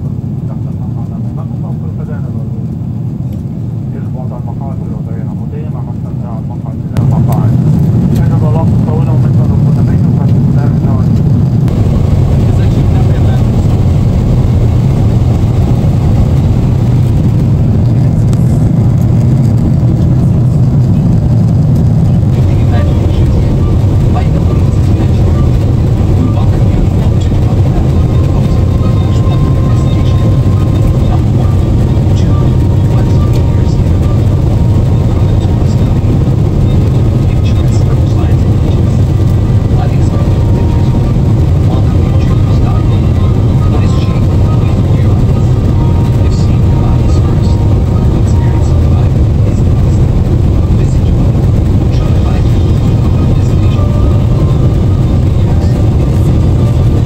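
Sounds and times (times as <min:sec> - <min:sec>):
airliner cabin rumble in flight: 0:00.0 - 0:57.0.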